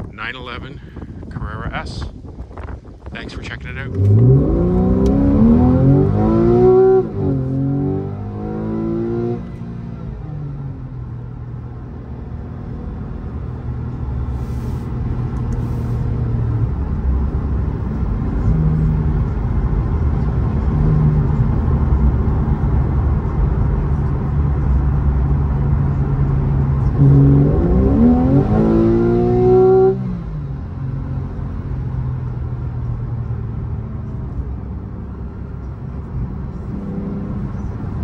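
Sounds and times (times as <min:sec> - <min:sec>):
car engine accelerating: 0:03.0 - 0:38.0.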